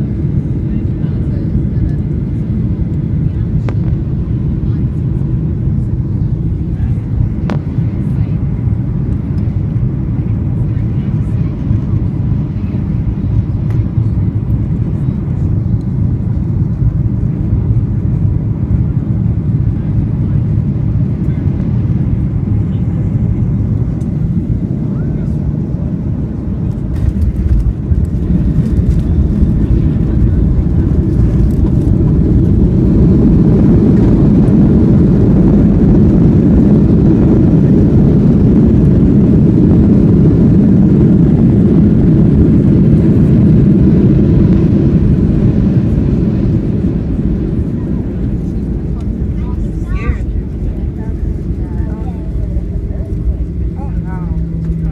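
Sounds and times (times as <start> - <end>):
jet engines and airflow rushing: 0.0 - 54.9.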